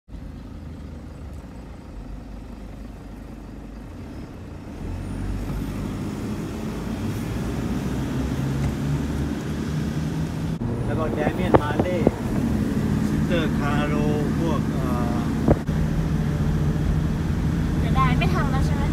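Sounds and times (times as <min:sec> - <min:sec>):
car engine rumble: 0:00.1 - 0:18.9
road noise inside car: 0:00.1 - 0:18.9.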